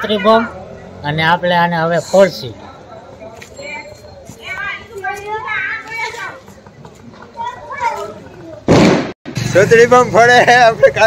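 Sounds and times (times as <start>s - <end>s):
children and people talking: 0.0s - 8.9s
sudden loud noise burst: 8.7s - 9.9s.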